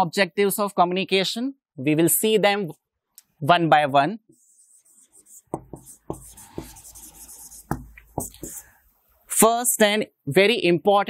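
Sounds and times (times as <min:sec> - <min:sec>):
marker scratching on whiteboard: 0:04.3 - 0:08.8
marker tapping on whiteboard: 0:05.0 - 0:08.7.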